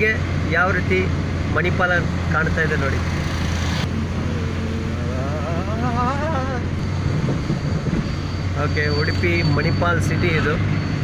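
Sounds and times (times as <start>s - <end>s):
engine and tyres on wet road: 0.0s - 11.0s
wavering voice-like tone: 4.2s - 6.9s.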